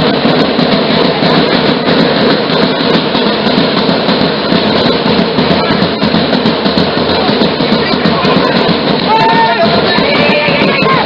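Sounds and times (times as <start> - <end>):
drums clattering: 0.0 - 11.0.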